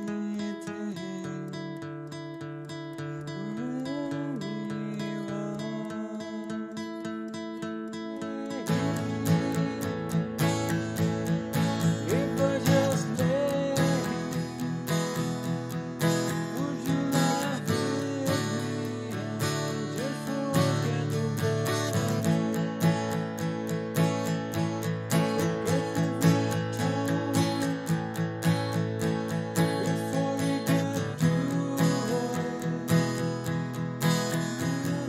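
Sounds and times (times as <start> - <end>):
acoustic guitar picked riff: 0.0 - 35.0.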